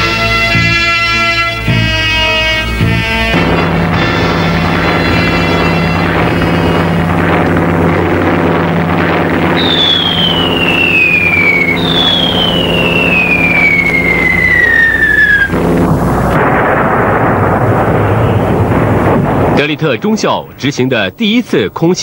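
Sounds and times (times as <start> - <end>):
rough noisy rumble: 0.0 - 21.1
steady droning tone: 1.6 - 19.4
falling whistles: 9.5 - 15.6, 18.0 - 18.7.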